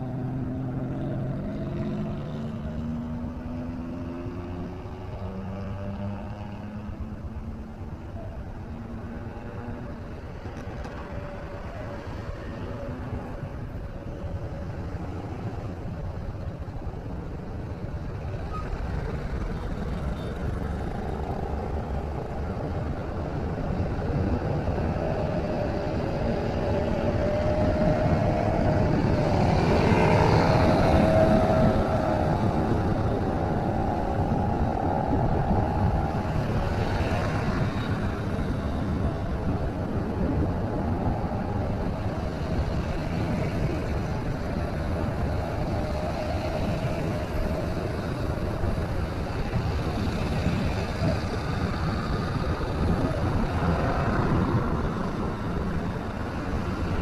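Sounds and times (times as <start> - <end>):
road traffic noise: 0.0 - 57.0.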